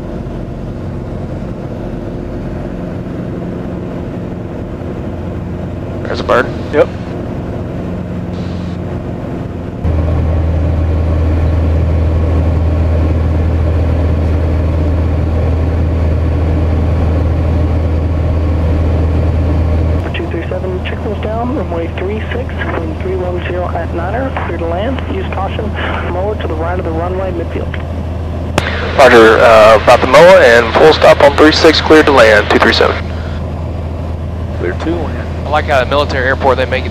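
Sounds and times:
aircraft engine and propeller drone: 0:00.0 - 0:36.9
voices: 0:06.0 - 0:07.0, 0:20.0 - 0:27.8, 0:28.6 - 0:33.4, 0:34.6 - 0:36.9.

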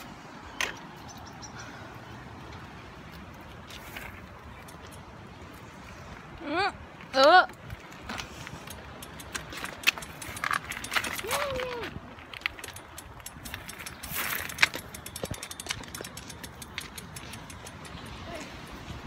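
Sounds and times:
bicycle clicks and rattles: 0:03.7 - 0:05.2, 0:07.6 - 0:18.8.

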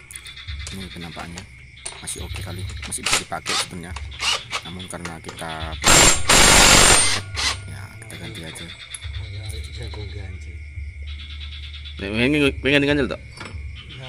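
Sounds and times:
impact wrench rattling burst: 0:05.8 - 0:07.6.

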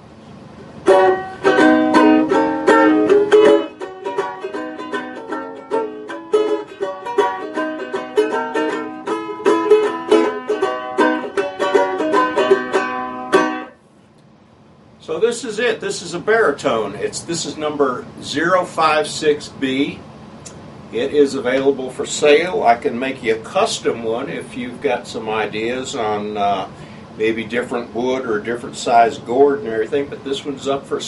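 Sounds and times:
banjolele strummed: 0:00.8 - 0:13.8.

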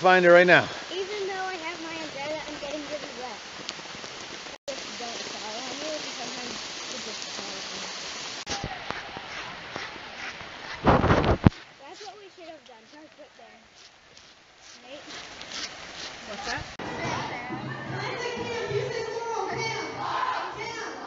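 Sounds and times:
rain hissing: 0:00.0 - 0:21.0.

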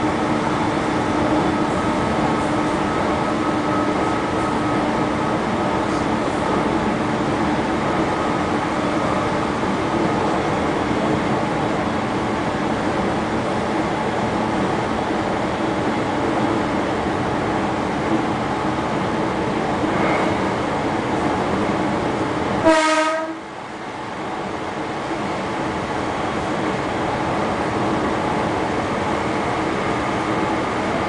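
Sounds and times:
electric train running: 0:00.0 - 0:22.7
train horn toot: 0:22.6 - 0:23.5.

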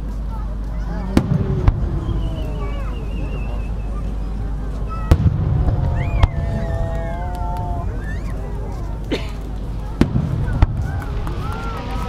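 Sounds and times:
low rolling rumble: 0:00.3 - 0:12.0.

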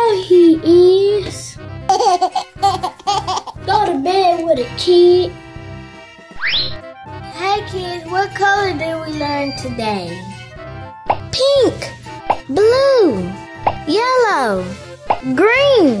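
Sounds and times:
child speaking: 0:00.0 - 0:01.6, 0:03.6 - 0:05.4, 0:07.2 - 0:10.4, 0:11.3 - 0:16.0
cheerful children's music: 0:00.0 - 0:16.0
cartoon pop sound effects: 0:06.4 - 0:06.8, 0:11.0 - 0:11.4, 0:12.2 - 0:12.5, 0:13.6 - 0:13.9, 0:15.0 - 0:15.3.

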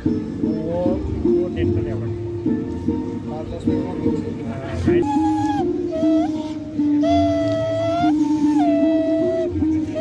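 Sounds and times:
small wind instrument tune: 0:04.8 - 0:10.0.

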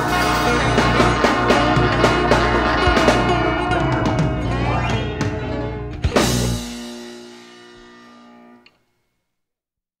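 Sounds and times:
band chord ringing out: 0:00.0 - 0:08.6.

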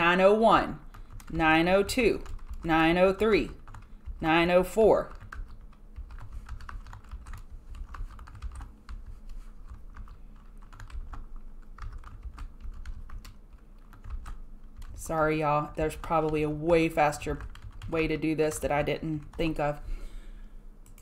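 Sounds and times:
typing on computer keyboard: 0:00.9 - 0:04.2, 0:05.0 - 0:15.0, 0:17.3 - 0:19.5.

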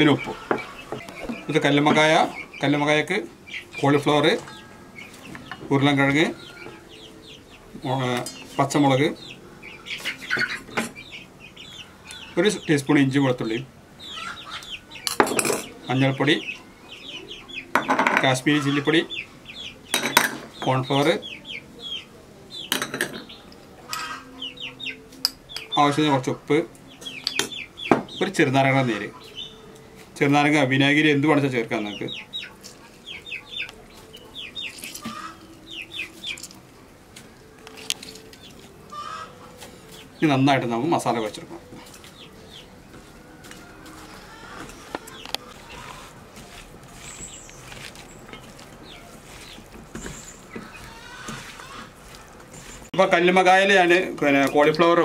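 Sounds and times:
chickens clucking: 0:00.0 - 0:55.0.

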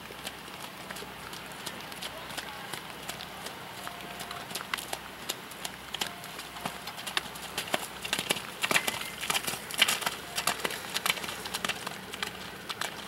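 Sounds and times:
horse hooves trotting through puddles: 0:00.0 - 0:13.0.

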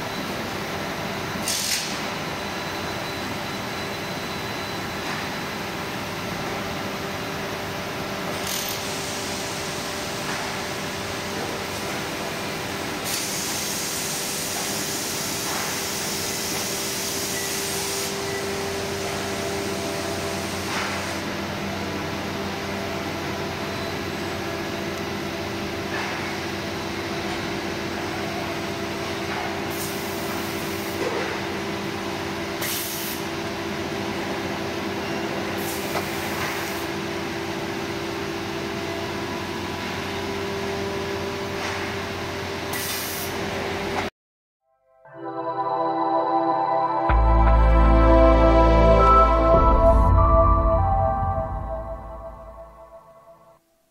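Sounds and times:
conveyor machine hum: 0:00.0 - 0:32.6.

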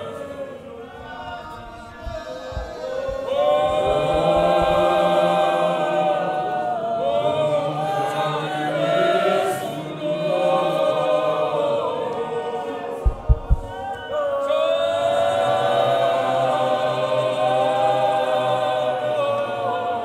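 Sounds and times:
men's choir singing a cappella: 0:00.0 - 0:20.0
low thumps: 0:01.1 - 0:05.5, 0:13.0 - 0:14.0.

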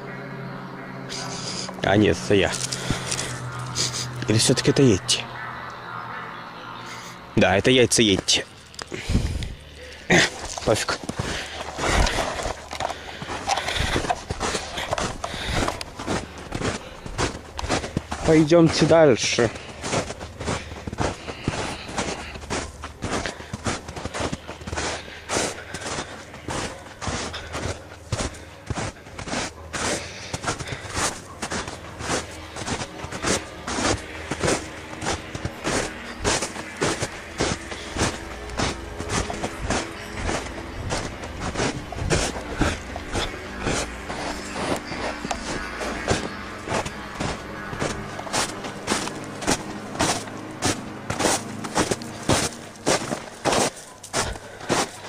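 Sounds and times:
footsteps crunching through snow: 0:00.8 - 0:55.0.

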